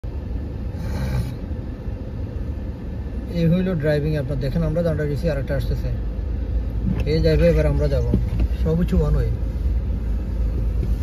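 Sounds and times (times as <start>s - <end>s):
engine and tyres rumbling: 0.0s - 11.0s.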